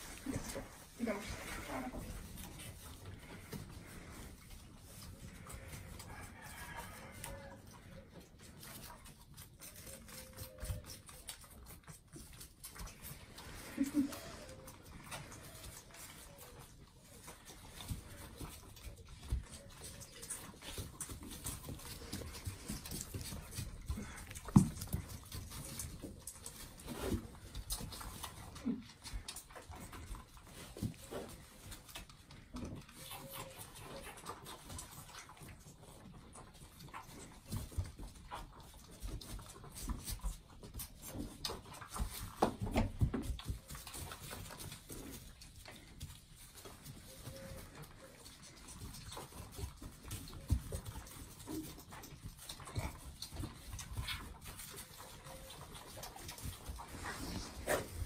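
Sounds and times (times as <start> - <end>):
animals making low sounds: 0.0 - 58.0.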